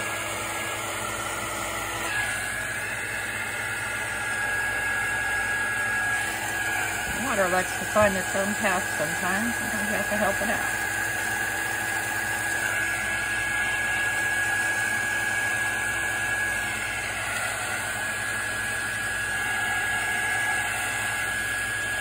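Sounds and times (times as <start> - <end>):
fan motor whine: 0.0 - 22.0
heat tool blowing air: 0.0 - 22.0.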